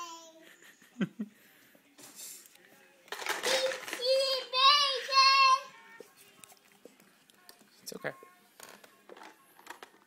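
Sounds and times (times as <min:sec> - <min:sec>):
plastic toys clicking and knocking: 0:03.1 - 0:04.5, 0:08.6 - 0:10.0.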